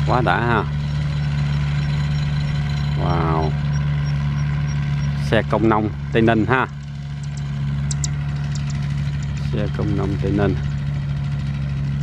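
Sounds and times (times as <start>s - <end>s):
diesel truck engine droning: 0.0s - 12.0s.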